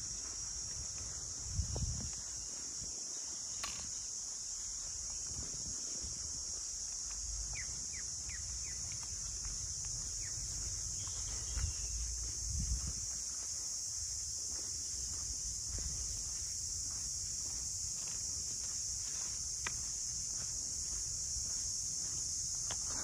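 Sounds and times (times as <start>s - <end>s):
insects droning in trees: 0.0s - 23.0s.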